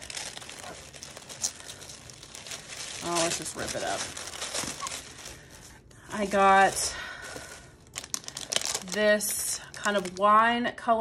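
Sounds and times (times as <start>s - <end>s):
tissue paper tearing and crinkling: 0.0s - 10.2s.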